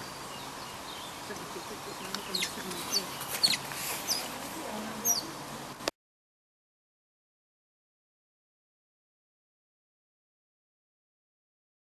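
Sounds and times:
otter chirping squeaks: 1.9 - 4.4.

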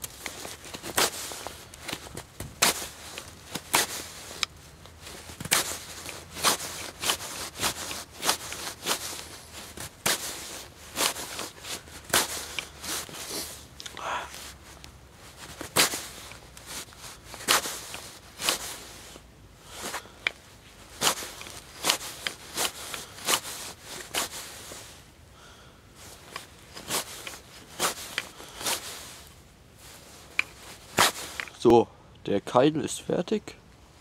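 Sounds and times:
knife whittling wood: 0.0 - 4.5, 5.1 - 14.0, 15.4 - 19.0, 19.7 - 24.7, 30.2 - 31.6.

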